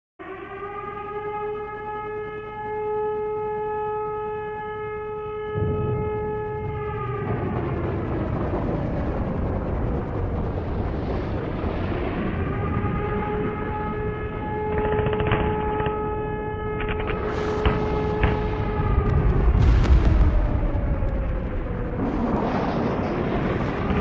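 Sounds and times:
air-raid siren wailing: 0:00.2 - 0:24.0.

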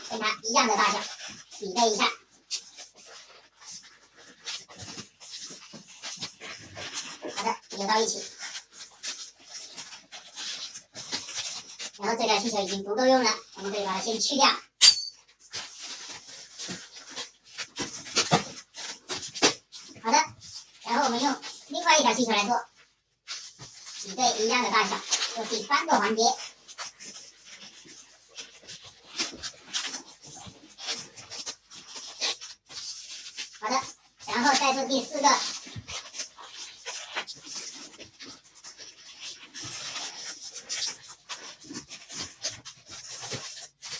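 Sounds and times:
balloons squeaking and rubbing: 0:00.0 - 0:43.9.

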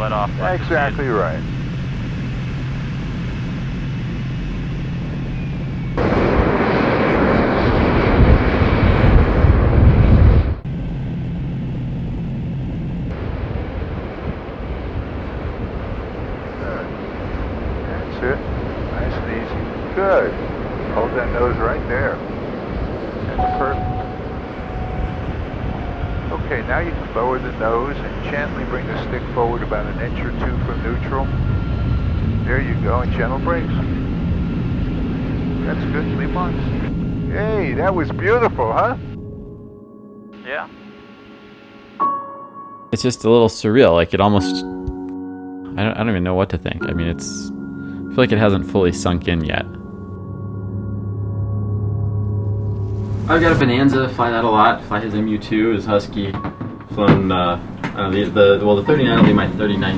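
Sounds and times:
jet rushing roar: 0:00.0 - 0:39.7, 0:48.3 - 0:59.9
jet engine hum: 0:00.0 - 0:39.8, 0:47.5 - 0:59.9.

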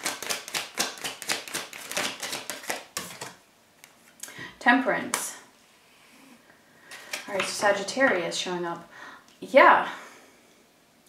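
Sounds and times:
cards being shuffled: 0:00.0 - 0:04.2.

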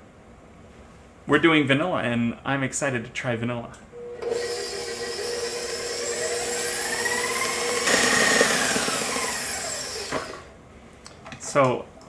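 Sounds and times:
stand mixer churning: 0:04.3 - 0:10.4.

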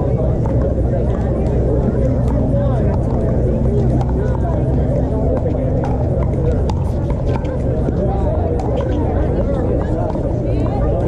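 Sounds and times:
people talking: 0:00.0 - 0:11.0
steady low rumble: 0:00.0 - 0:11.0.

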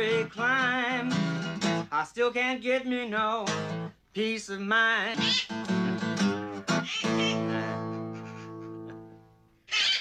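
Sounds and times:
parrot squawk: 0:05.2 - 0:05.6, 0:06.7 - 0:08.9, 0:09.7 - 0:10.0.

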